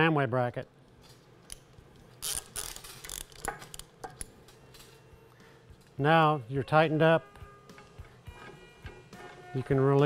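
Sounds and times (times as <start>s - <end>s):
ratchet clicks: 1.5s - 4.3s.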